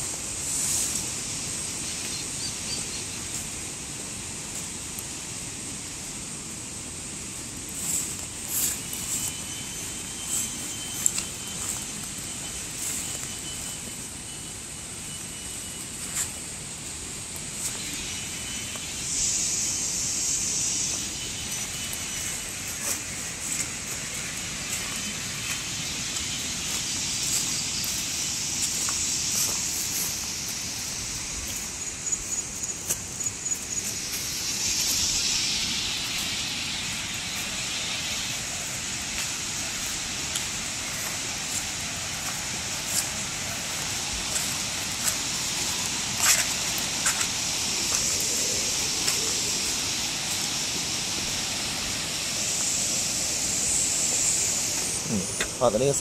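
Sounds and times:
footsteps through long grass: 0:07.5 - 0:56.0
grass swishing: 0:07.7 - 0:13.8, 0:20.9 - 0:55.6
river rapids rushing: 0:20.0 - 0:56.0.

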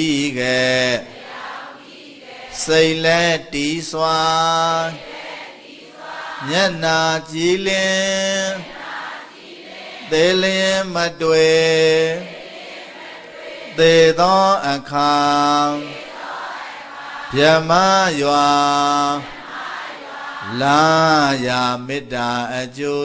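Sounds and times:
man chanting into microphone: 0:00.0 - 0:01.2, 0:02.5 - 0:05.1, 0:06.4 - 0:08.8, 0:10.0 - 0:12.3, 0:13.7 - 0:16.0, 0:17.3 - 0:19.4, 0:20.4 - 0:23.0.

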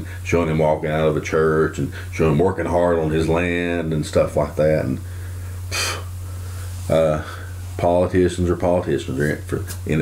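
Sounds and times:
man talking: 0:00.0 - 0:05.1, 0:06.9 - 0:10.0
steady low hum: 0:00.0 - 0:10.0
man breathing in: 0:05.0 - 0:07.6.

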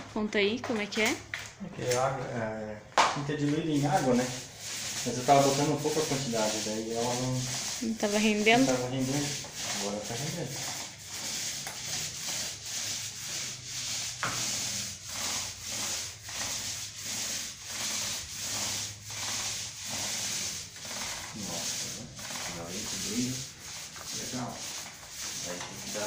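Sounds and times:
paint roller rubbing on wall: 0:03.2 - 0:26.0.

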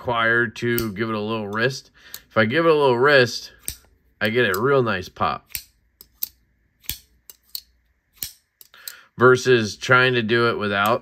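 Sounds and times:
folding knife blade clicking: 0:03.6 - 0:03.9, 0:05.5 - 0:09.0.

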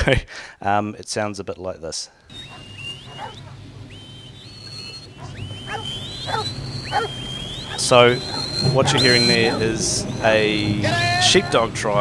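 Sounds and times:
whistled commands over loudspeakers: 0:02.3 - 0:11.6
steady low hum: 0:02.3 - 0:12.0.

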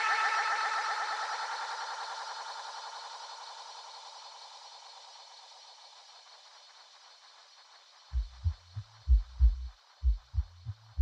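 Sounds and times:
electronic kick drum and bassline: 0:08.1 - 0:11.0.

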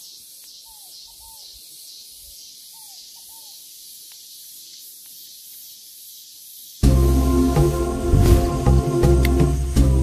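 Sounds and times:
short arched bird calls: 0:00.0 - 0:06.8
pulsing insect chorus: 0:00.0 - 0:10.0.

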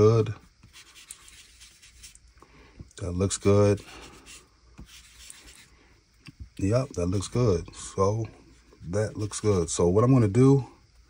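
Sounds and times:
faint rubbing of cotton pad: 0:00.6 - 0:02.2, 0:03.2 - 0:05.8.

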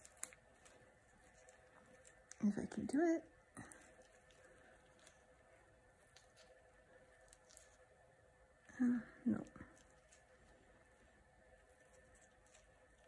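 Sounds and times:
soft clicks and rustles: 0:00.0 - 0:08.1, 0:09.4 - 0:13.0
faint steady hum: 0:00.0 - 0:13.0.

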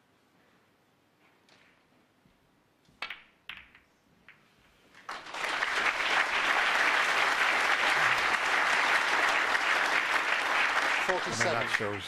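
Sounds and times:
snooker balls clicking: 0:02.8 - 0:04.5.

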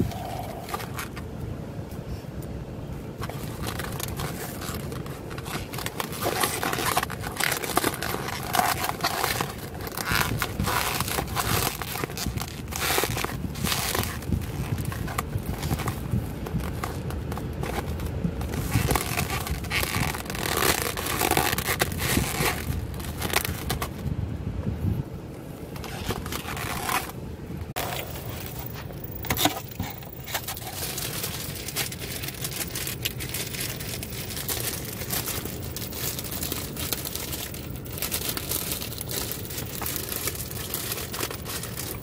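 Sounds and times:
plastic cling wrap crinkling: 0:03.2 - 0:24.0, 0:25.7 - 0:42.0.

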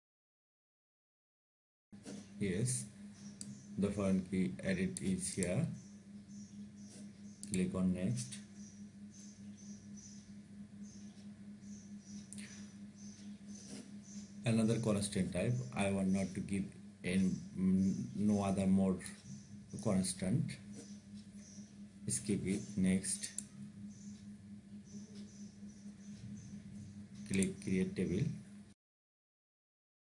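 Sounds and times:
steady low hum: 0:02.0 - 0:28.8
faint high-pitched chirps: 0:05.3 - 0:27.8.

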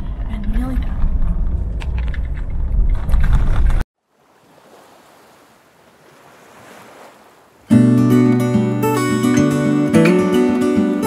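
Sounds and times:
rattles and clicks: 0:00.0 - 0:03.8
road rumble inside vehicle: 0:00.0 - 0:03.8
acoustic guitar music: 0:07.7 - 0:11.0.

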